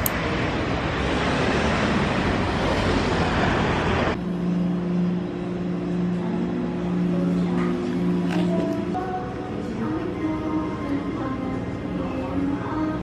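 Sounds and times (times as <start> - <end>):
passing cars: 0.0 - 4.2
steady low hum: 4.1 - 13.0.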